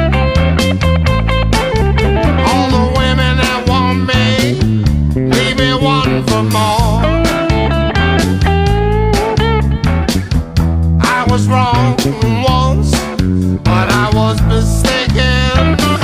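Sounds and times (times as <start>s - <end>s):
drums: 0.0s - 16.0s
electric bass: 0.0s - 16.0s
electric guitar lead lines: 0.0s - 16.0s.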